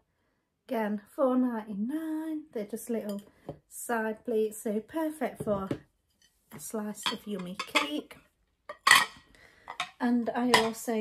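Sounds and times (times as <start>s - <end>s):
plates clinking: 7.0s - 8.0s, 8.7s - 10.8s.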